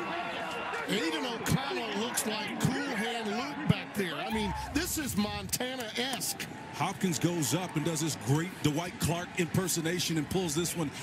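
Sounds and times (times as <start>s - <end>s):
men's voices: 0.0s - 11.0s.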